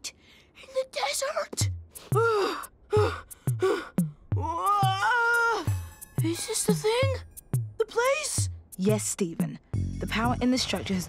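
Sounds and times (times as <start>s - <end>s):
boy groaning and wailing: 0.7s - 7.2s
background music with thumping beat: 3.0s - 11.0s.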